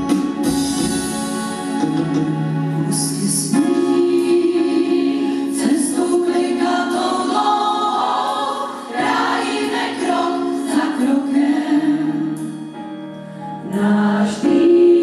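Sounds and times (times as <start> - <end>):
choir singing held chords: 2.7 - 15.0.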